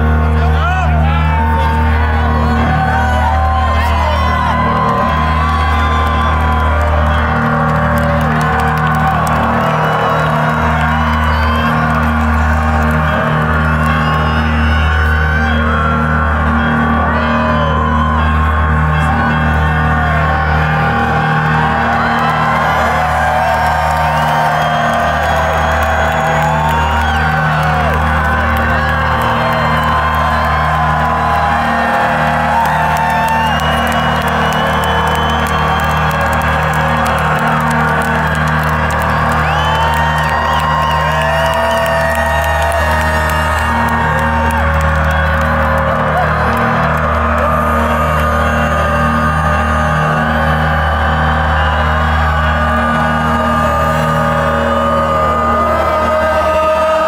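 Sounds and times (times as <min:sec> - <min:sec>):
crowd whooping and cheering: 0:00.0 - 0:57.0.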